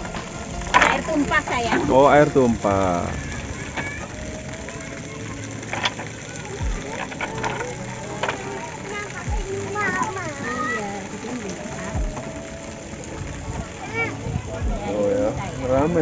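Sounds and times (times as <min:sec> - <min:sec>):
voices and children calling: 0:00.0 - 0:16.0
water splashing: 0:00.0 - 0:16.0.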